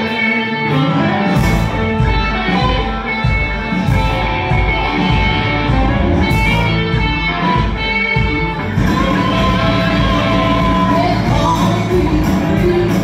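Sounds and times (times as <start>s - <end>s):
country-rock band playing: 0.0s - 13.0s
electric guitar: 0.0s - 13.0s.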